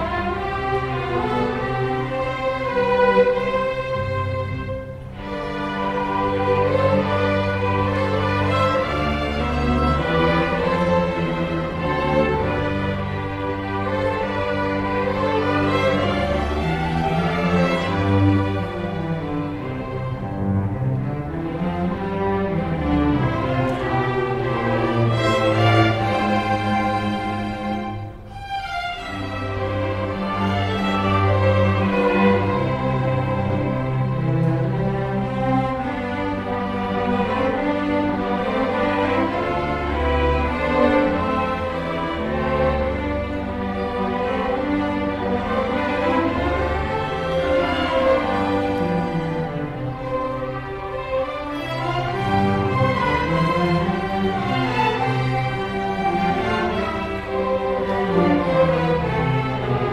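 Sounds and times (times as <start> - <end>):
string orchestra playing held notes: 0.0 - 59.9.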